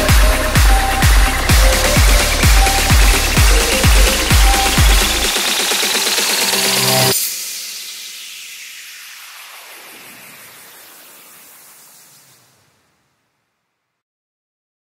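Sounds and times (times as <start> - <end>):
kick drum: 0.0 - 5.8
rising synth riser: 0.0 - 12.8
falling noise sweep: 0.0 - 13.2.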